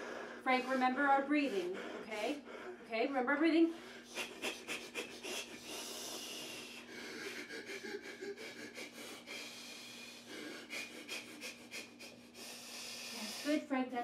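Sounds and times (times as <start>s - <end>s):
man breathing slowly: 0.0s - 2.9s, 3.7s - 13.6s.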